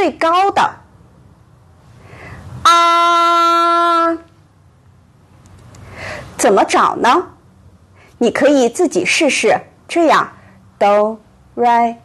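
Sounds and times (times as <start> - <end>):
woman holding a high vowel: 2.6 - 4.3.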